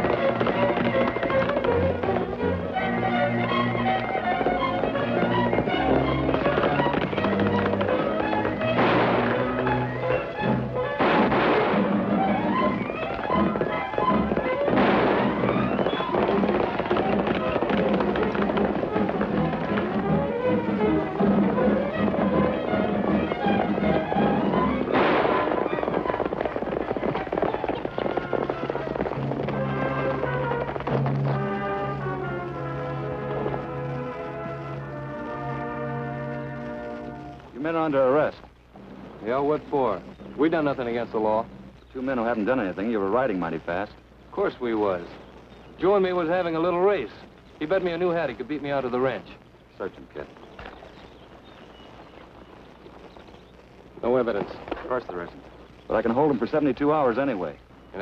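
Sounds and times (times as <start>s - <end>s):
dramatic western chase music: 0.0s - 58.0s
gunshots: 4.4s - 20.2s, 21.2s - 35.8s.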